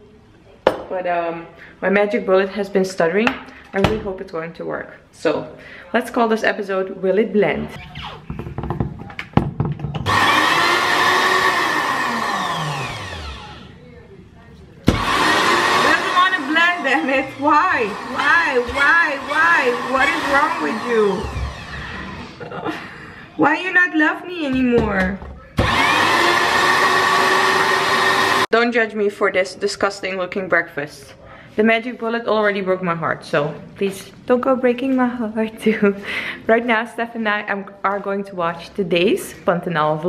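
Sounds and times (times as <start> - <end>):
blender motor whining: 10.0 - 13.7, 14.9 - 22.4, 25.6 - 28.5.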